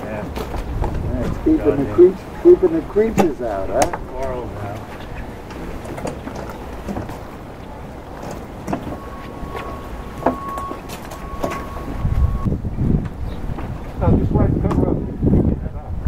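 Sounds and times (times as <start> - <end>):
wind rumble on microphone: 0.0 - 16.0.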